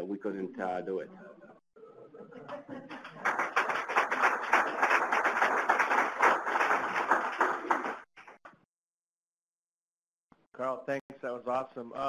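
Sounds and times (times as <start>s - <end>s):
audience applauding: 2.6s - 8.4s.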